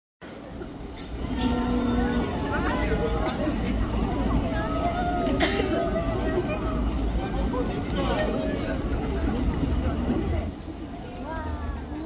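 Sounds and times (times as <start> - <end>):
crowd calling out and chattering: 0.2 - 12.0.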